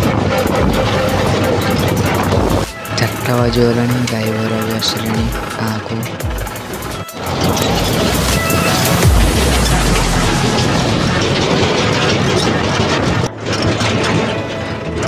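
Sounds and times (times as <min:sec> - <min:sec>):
music with singing voice: 0:00.0 - 0:11.8
tractor engine running: 0:00.0 - 0:15.0
wind and road noise: 0:00.0 - 0:15.0.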